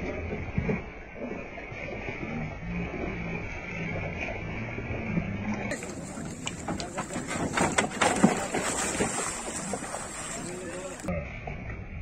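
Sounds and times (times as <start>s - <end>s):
bull splashing through water: 0.0s - 11.1s
people's voices: 5.7s - 11.2s.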